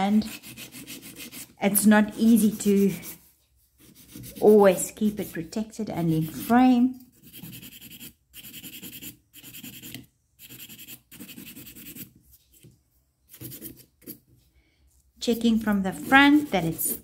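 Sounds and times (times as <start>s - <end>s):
nail file rasping on nail: 0.1s - 3.2s, 6.2s - 12.1s, 15.9s - 17.0s.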